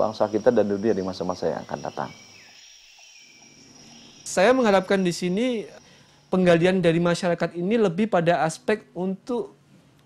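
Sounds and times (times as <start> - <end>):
thin high steady hum: 0.0 - 10.0.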